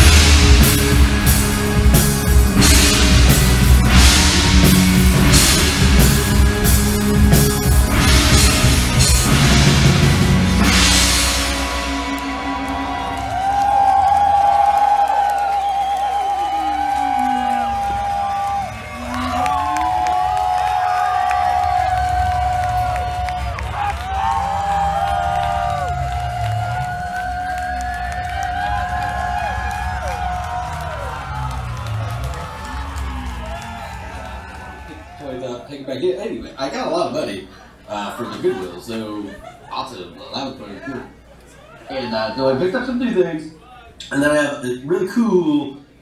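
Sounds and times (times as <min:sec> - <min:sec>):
electronic rock song: 0:00.0 - 0:35.2
crowd cheering and whooping: 0:00.0 - 0:35.8, 0:40.8 - 0:44.0.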